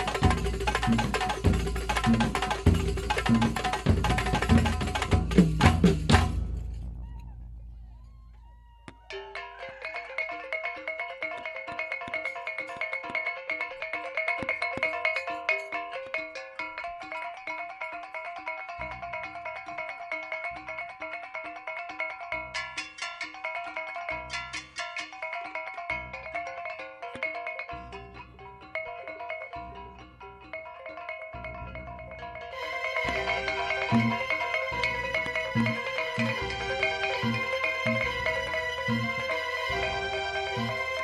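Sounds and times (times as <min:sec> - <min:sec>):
rapid hand drum strokes: 0:00.0 - 0:07.2
deep bass drum beats: 0:00.0 - 0:08.1
bell-like melodic notes: 0:27.5 - 0:41.0.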